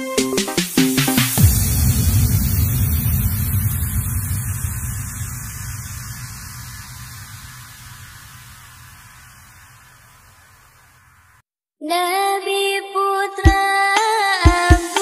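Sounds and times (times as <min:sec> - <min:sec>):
hiss: 0:00.0 - 0:11.4, 0:14.6 - 0:15.0
deep bass rumble: 0:01.4 - 0:09.8.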